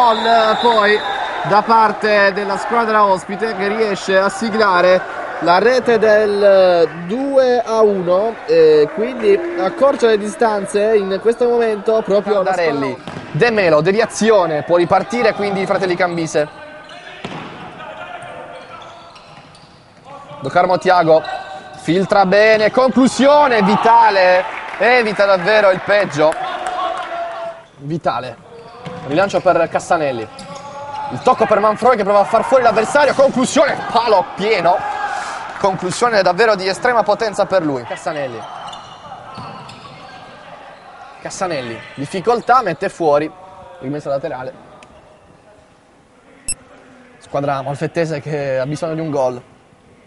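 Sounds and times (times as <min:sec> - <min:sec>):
sports hall hubbub: 0:00.0 - 0:50.0.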